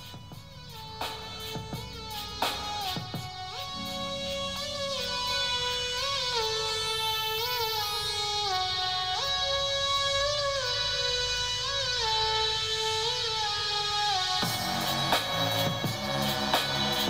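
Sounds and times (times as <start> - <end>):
instrumental music through small speaker: 0.0 - 17.0.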